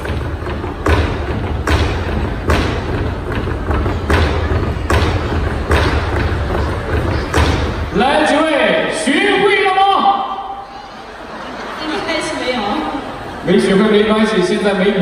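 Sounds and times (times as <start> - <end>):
drum beating with deep boom: 0.0 - 8.1.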